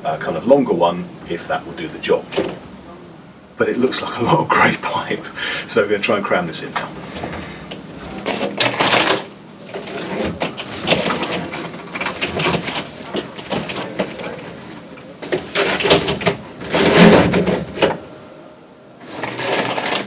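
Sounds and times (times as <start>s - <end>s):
plastic hose rustling and knocking: 6.8s - 18.0s.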